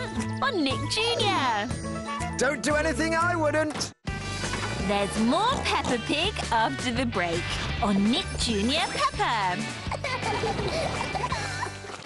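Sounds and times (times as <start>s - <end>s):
jingle music: 0.0s - 3.6s, 6.5s - 11.3s.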